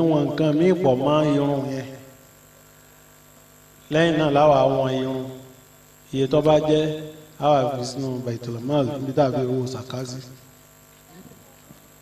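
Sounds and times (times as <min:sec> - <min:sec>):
man speaking: 0:00.0 - 0:02.0, 0:03.9 - 0:05.5, 0:06.1 - 0:10.4
faint electrical hum: 0:00.0 - 0:12.0.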